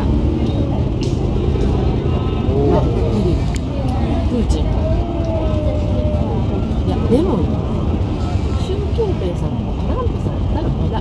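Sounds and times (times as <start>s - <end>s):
cars passing on road: 0.0s - 11.0s
people talking: 0.0s - 11.0s.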